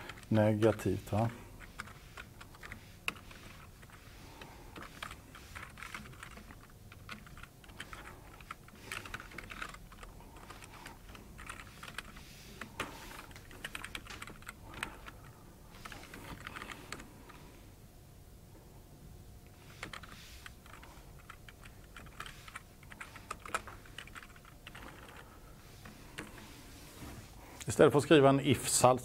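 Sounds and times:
computer keyboard typing: 0.0 - 17.1, 19.6 - 26.5.

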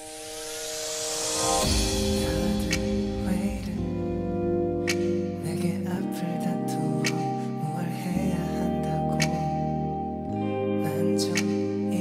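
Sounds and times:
cymbal roll: 0.0 - 5.4
bass and drums: 1.0 - 5.5
sustained keyboard chord: 1.2 - 12.0.

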